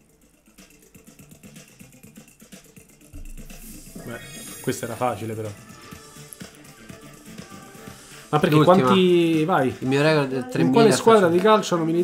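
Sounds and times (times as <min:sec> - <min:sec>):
video game background music: 0:00.0 - 0:12.0
countdown ticking pulse: 0:03.2 - 0:05.7.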